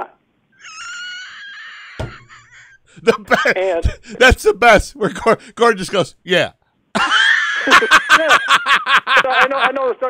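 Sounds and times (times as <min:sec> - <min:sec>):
man laughing in a high squeal: 0:00.6 - 0:03.5
thump: 0:02.0 - 0:02.3.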